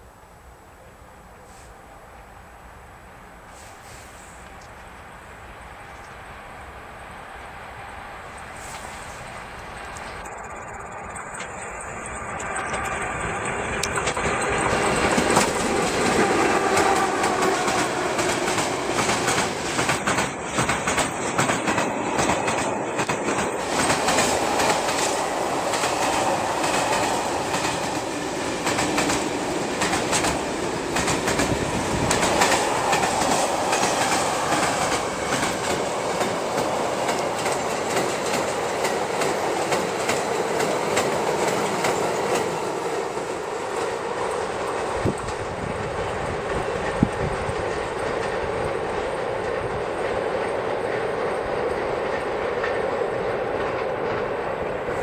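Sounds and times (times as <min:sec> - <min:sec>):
freight train passing: 0:00.0 - 0:55.0
wheels clattering over rail joints: 0:09.8 - 0:55.0.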